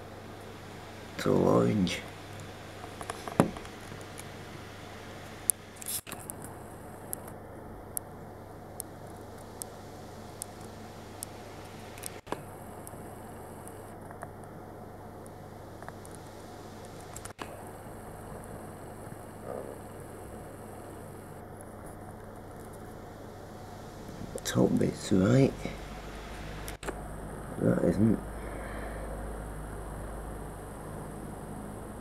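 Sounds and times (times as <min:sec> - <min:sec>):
steady background hiss: 0:00.0 - 0:32.0.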